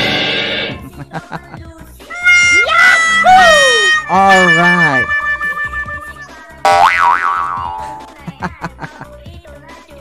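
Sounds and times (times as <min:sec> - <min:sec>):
cartoon boing: 0:03.8 - 0:08.2.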